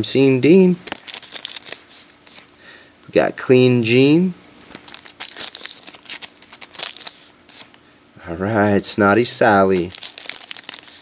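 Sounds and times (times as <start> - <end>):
foil wrapper crinkling: 0.8 - 2.4, 4.6 - 7.8, 9.6 - 11.0.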